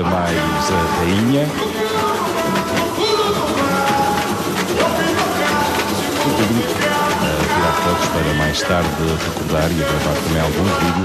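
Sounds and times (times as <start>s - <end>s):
pitched melody line: 0.0s - 11.0s
samba drum section: 0.0s - 11.0s.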